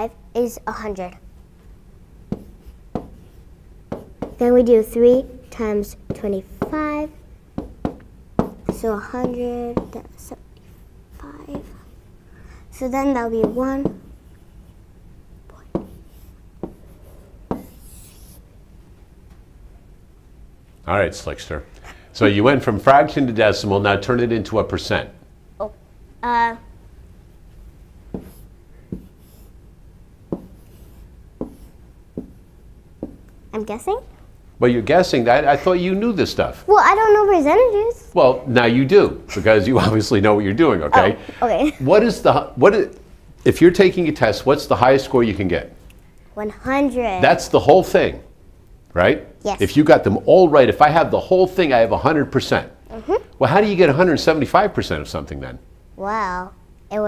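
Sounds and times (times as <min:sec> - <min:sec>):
faint pen strokes: 0:15.5 - 0:18.4, 0:28.1 - 0:29.6, 0:30.3 - 0:32.4.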